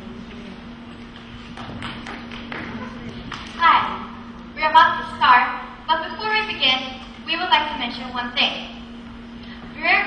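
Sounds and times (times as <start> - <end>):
faint low hum: 0.0 - 10.0
audience clapping: 1.1 - 3.6.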